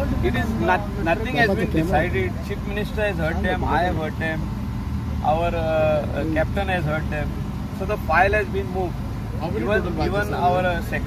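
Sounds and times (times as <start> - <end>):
man speaking: 0.0 - 4.5, 5.2 - 11.0.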